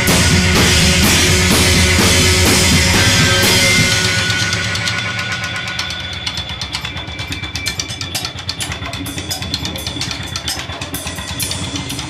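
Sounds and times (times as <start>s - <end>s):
loud drum-heavy rock passage: 0.0s - 12.0s
rock band low pulsing drone: 0.0s - 12.0s.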